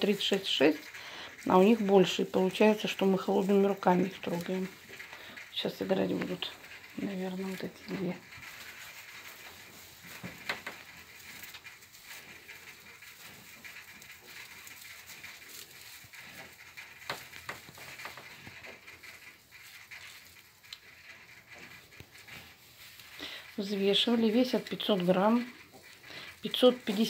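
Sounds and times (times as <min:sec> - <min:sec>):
light crackles in straw: 0:00.0 - 0:27.0
straw rustling: 0:00.0 - 0:27.0.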